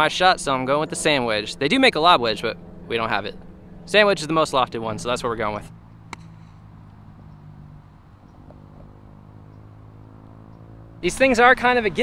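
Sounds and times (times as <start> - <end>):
golf club striking ball: 5.9 - 7.5.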